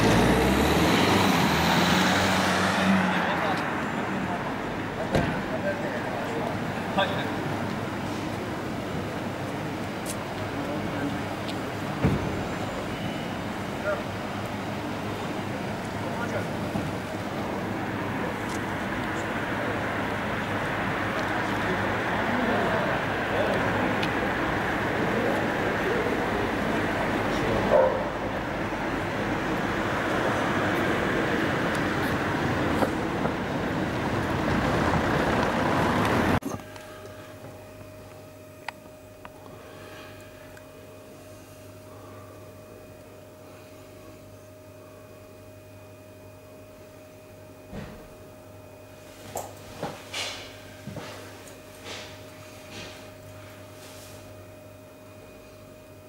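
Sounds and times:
car driving past: 0.0s - 4.6s
street vehicle noise: 0.0s - 56.0s.

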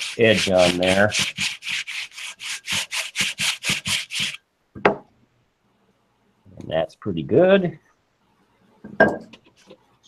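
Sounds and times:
sandpaper rubbing wood: 0.0s - 4.4s.

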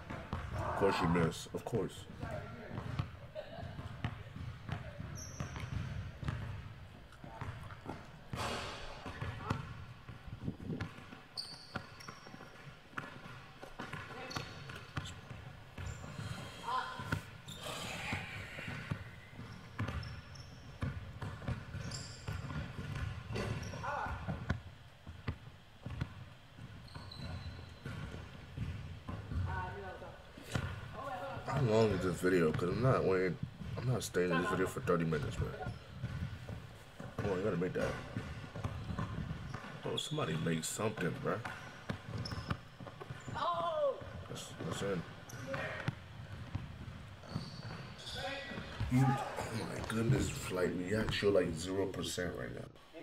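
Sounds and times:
basketball dribbled on hardwood: 2.2s - 3.1s, 3.7s - 8.4s, 9.0s - 15.9s, 18.6s - 29.7s, 35.2s - 39.8s, 40.9s - 47.8s
sneaker squeaks: 2.2s - 9.8s, 10.7s - 24.6s, 25.8s - 51.3s.

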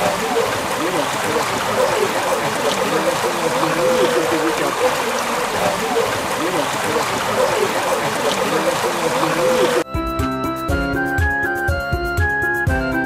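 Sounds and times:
faint voices: 0.0s - 9.8s
water rushing through sluice gate: 0.0s - 9.8s.

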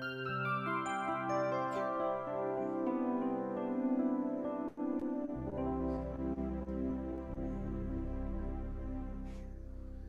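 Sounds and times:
electronic keyboard chords: 0.0s - 10.0s
low bass note: 5.5s - 10.0s.

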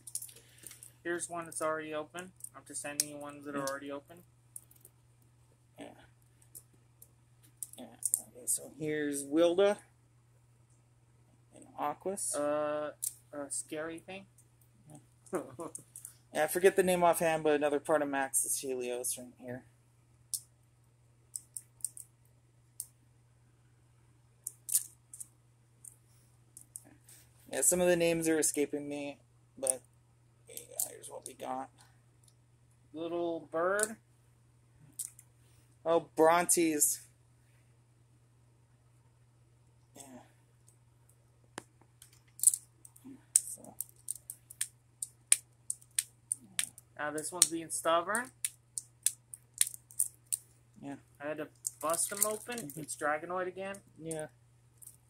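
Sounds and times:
plastic toy balls clicking: 42.0s - 46.8s, 48.2s - 50.4s, 51.5s - 52.9s.

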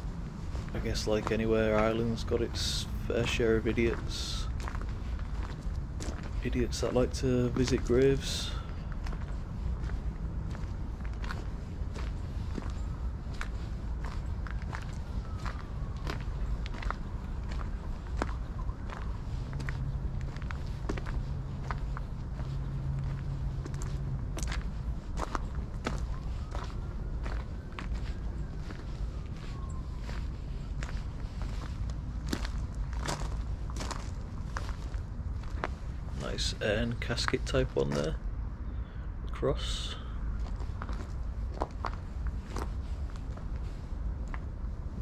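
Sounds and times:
footsteps on gravel: 0.2s - 38.2s, 40.4s - 44.4s.

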